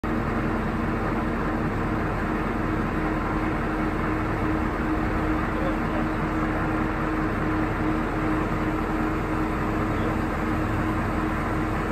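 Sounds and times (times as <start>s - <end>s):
diesel engine running steadily: 0.0s - 11.9s.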